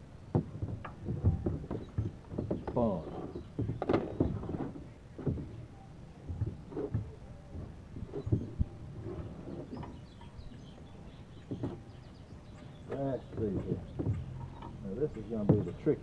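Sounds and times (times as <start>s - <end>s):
plastic boat knocking against dock: 0.3s - 8.7s, 12.9s - 14.6s, 15.3s - 16.0s.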